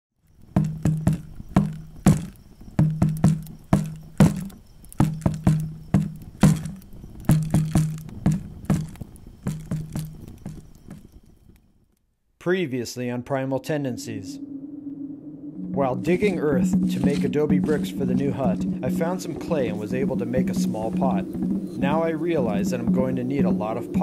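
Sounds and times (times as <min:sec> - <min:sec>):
low drum rhythmic pattern: 0:15.7 - 0:24.0.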